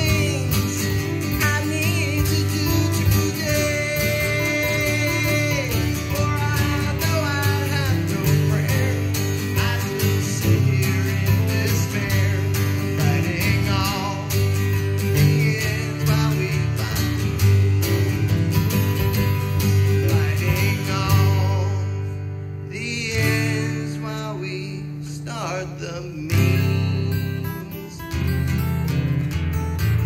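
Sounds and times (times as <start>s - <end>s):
acoustic guitars playing country tune: 0.0s - 30.0s.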